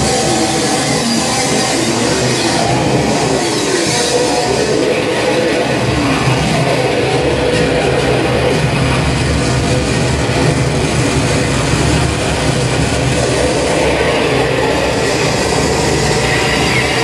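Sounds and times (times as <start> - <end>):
harsh noise music rumble and hiss: 0.0 - 17.0.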